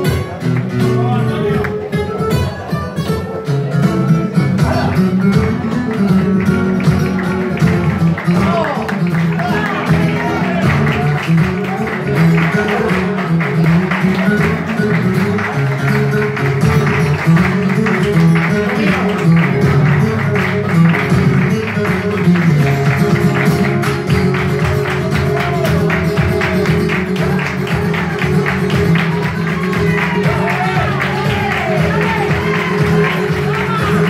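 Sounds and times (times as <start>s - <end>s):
rhythmic hand clapping: 0.0s - 2.8s, 3.5s - 34.0s
flamenco guitar: 0.0s - 34.0s.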